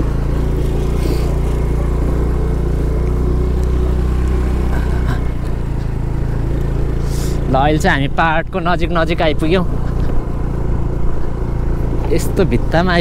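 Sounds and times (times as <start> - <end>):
motor scooter engine running: 0.0 - 13.0
road and wind noise: 0.0 - 13.0.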